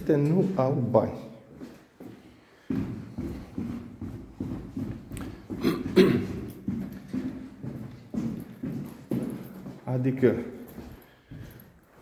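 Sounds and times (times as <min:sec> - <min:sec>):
man's footsteps walking: 0:00.0 - 0:12.0.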